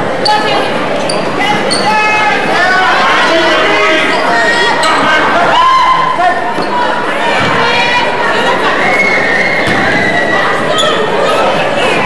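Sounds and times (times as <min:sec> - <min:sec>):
echoing voices in a hall: 0:00.0 - 0:12.0.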